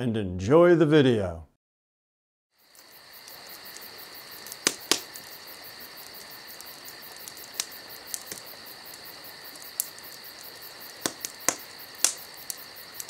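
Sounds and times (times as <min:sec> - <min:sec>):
crickets chirring: 0:02.5 - 0:13.0
campfire crackling and popping: 0:02.6 - 0:13.0.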